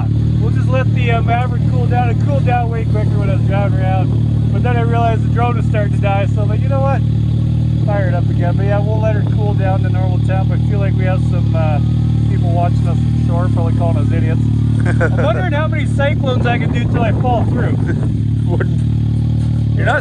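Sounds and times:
people talking: 0.0 - 7.0, 7.8 - 18.8, 19.7 - 20.0
vehicle engine idling: 0.0 - 20.0.

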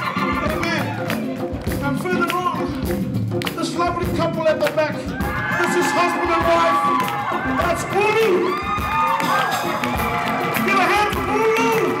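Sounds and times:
crowd cheering and whooping: 0.0 - 1.4, 5.1 - 12.0
live band playing: 0.0 - 12.0.

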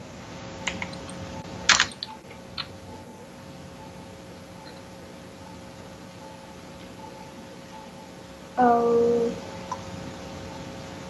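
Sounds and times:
keyboard typing: 0.6 - 3.1.

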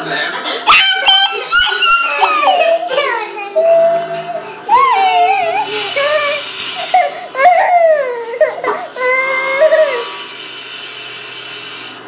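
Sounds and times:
toddler crying and whining: 0.7 - 10.2.

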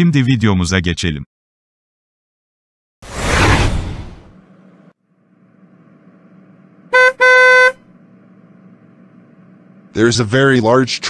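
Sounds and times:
low traffic hum: 3.1 - 11.0
car horn honking: 6.8 - 7.9.

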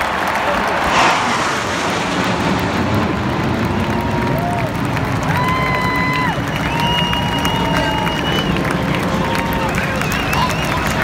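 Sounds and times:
aircraft engines rumbling: 0.0 - 11.0
stadium crowd cheering: 0.0 - 11.0
crowd whistling: 5.3 - 11.0.

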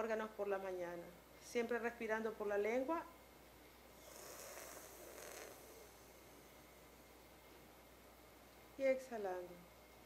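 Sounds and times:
breath drawn in hiss: 4.0 - 6.5.

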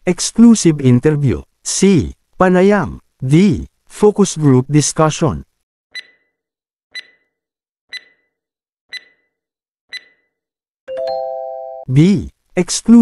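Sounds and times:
timer ticks: 5.9 - 6.3, 6.9 - 10.3.

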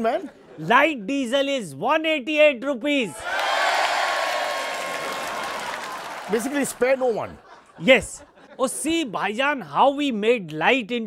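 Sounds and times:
crowd applause: 3.2 - 7.3.

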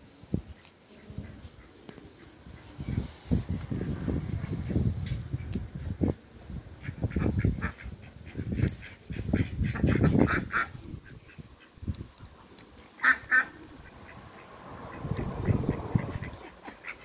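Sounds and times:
ducks quacking: 6.8 - 17.0
geese honking: 12.9 - 17.0.

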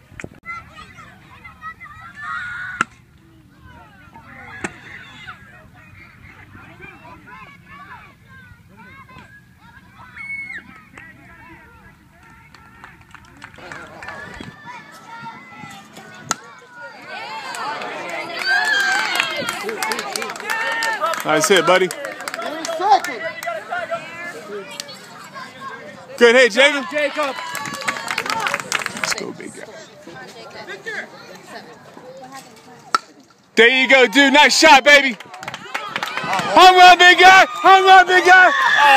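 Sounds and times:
spectators shouting and cheering: 0.0 - 31.9, 33.6 - 38.9
baseball bat cracking ball: 16.1 - 16.5.

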